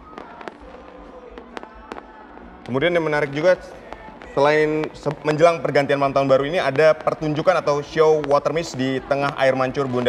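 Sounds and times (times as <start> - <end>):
faint music: 0.0 - 10.0
fireworks popping and banging: 0.0 - 10.0.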